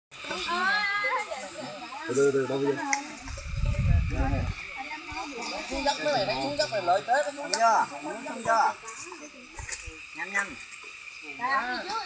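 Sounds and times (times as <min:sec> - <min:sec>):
people talking over one another: 0:00.2 - 0:12.0.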